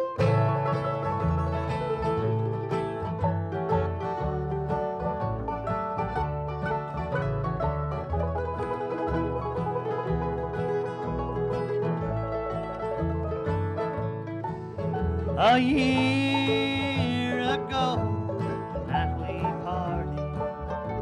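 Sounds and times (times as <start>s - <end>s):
bluegrass band playing: 0.0s - 21.0s
upright bass pulse: 0.2s - 21.0s.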